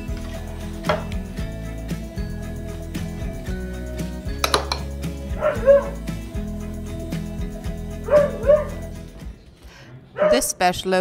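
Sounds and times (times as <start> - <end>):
background music: 0.0 - 11.0
dog barking: 5.4 - 6.0, 8.1 - 8.9, 10.2 - 10.5.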